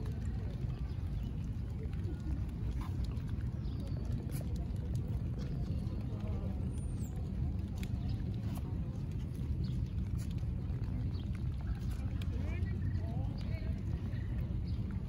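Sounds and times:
faint distant voices: 0:00.0 - 0:15.0
steady low rumble: 0:00.0 - 0:15.0.

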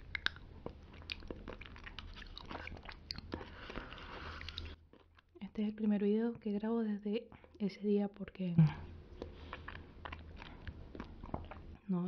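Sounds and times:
mouth eating clicks and lip smacks: 0:00.0 - 0:05.5, 0:08.6 - 0:11.8
low steady hum: 0:00.0 - 0:12.0.

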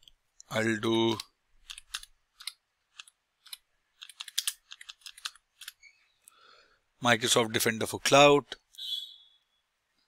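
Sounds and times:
computer keyboard typing: 0:01.6 - 0:05.8.

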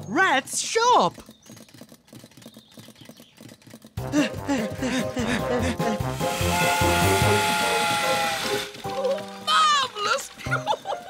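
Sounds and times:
clockwork toy train clacking: 0:05.6 - 0:11.0.

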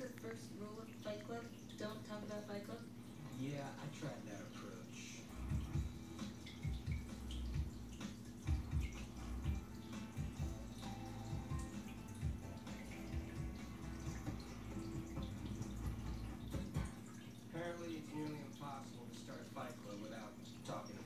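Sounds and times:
faint television sound: 0:00.0 - 0:05.8, 0:16.7 - 0:21.0.

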